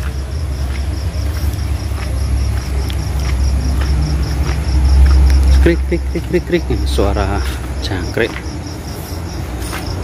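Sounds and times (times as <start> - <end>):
low steady rumble: 0.0 - 7.8
crickets chirping: 0.0 - 10.0.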